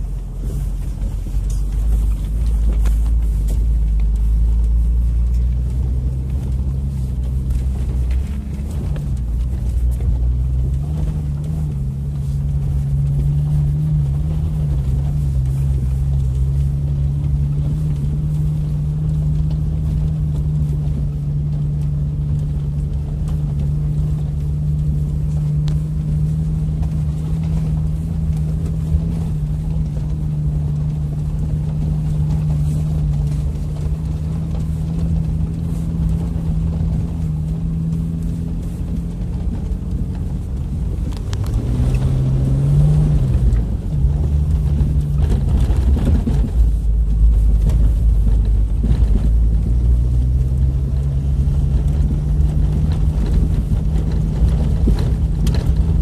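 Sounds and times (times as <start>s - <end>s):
car engine running off-road: 0.0s - 56.0s.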